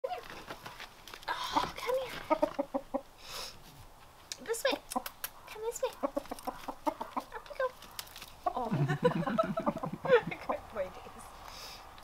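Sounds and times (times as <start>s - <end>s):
soft rustle: 0.1s - 2.6s, 3.3s - 4.3s
rooster clucking: 1.5s - 3.2s, 4.7s - 7.8s.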